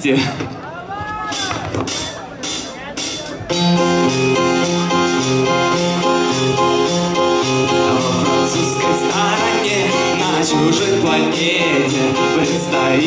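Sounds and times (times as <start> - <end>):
live band playing: 1.2 - 13.0.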